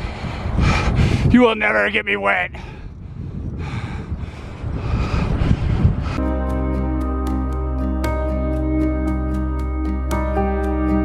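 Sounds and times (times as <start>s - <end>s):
wind buffeting microphone: 0.0s - 7.1s.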